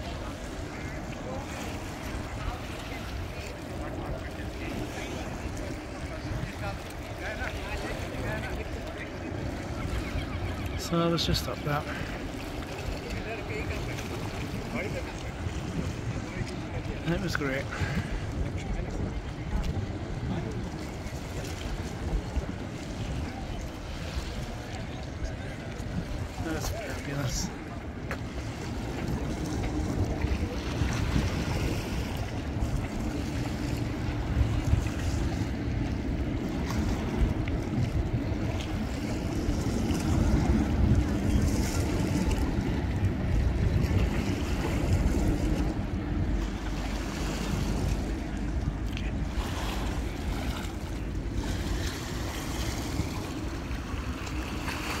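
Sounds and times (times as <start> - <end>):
faint voices of passers-by: 0.0 - 55.0
wind buffeting microphone: 11.8 - 55.0.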